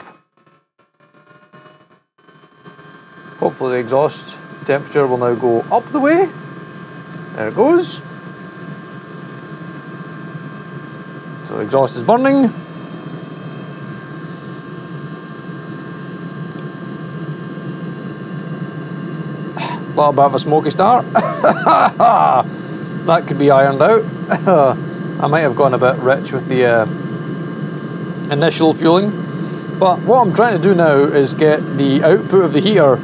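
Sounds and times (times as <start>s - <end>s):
thin steady whine: 0.0s - 33.0s
heater combustion fan hissing: 3.4s - 33.0s.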